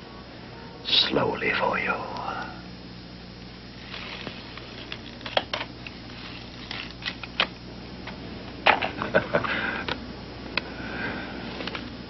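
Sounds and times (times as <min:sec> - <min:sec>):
paper bill crackling and rustling: 0:03.8 - 0:07.5.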